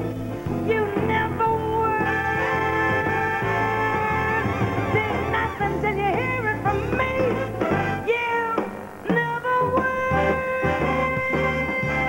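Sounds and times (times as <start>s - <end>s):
swinging jazz band: 0.0s - 12.0s
woman singing wordless jazz notes: 0.0s - 12.0s.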